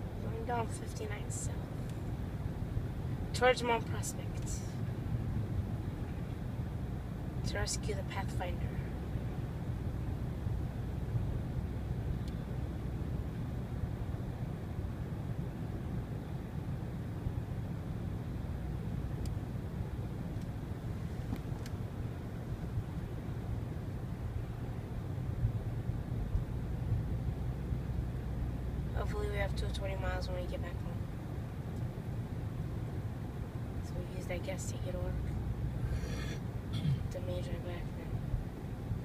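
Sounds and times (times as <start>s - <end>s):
car driving engine and tyre rumble: 0.0s - 39.0s.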